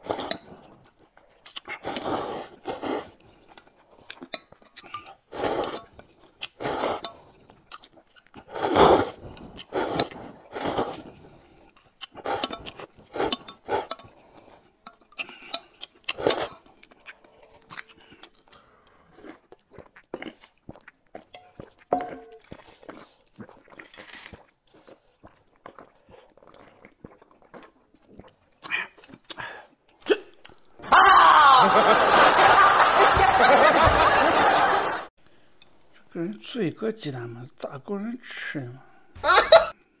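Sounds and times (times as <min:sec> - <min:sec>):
chewing: 0:00.0 - 0:30.8
slurping soup: 0:00.0 - 0:30.8
spoons clinking: 0:21.4 - 0:22.4
canned laughter: 0:31.4 - 0:35.1, 0:39.2 - 0:39.8.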